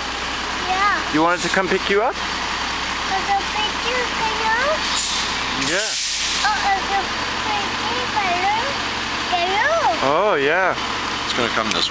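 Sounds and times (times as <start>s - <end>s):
diesel engine rumbling: 0.0s - 11.9s.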